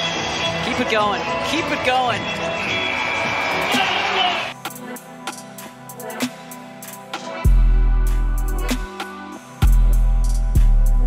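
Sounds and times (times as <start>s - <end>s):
crowd noise: 0.0s - 5.2s
music over loudspeakers: 0.0s - 11.0s.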